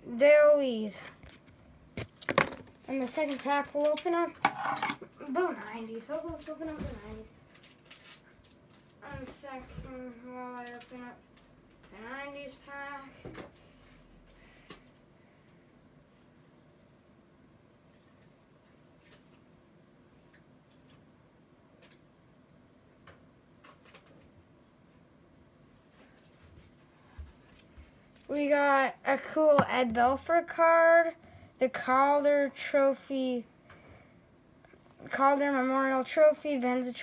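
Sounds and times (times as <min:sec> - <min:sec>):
objects set down on wooden table: 0:02.0 - 0:02.7.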